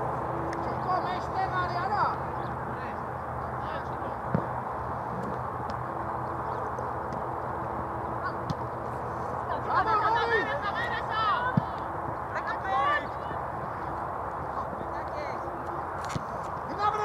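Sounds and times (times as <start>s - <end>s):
distant players shouting: 9.5s - 14.5s.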